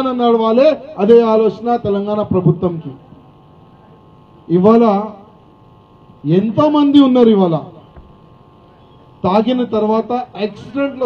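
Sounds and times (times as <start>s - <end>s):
man speaking through microphone: 0.0s - 3.1s, 4.5s - 5.3s, 6.2s - 7.9s, 9.2s - 11.0s
electrical hum from sound system: 0.0s - 11.0s.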